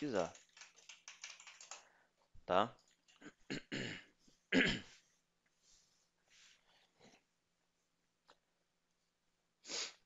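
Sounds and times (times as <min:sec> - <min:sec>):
man clearing throat: 0:03.2 - 0:04.9.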